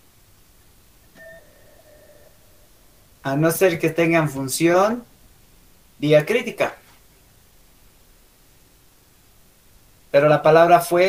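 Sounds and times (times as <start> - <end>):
faint two-pitch beep: 1.2 - 3.0.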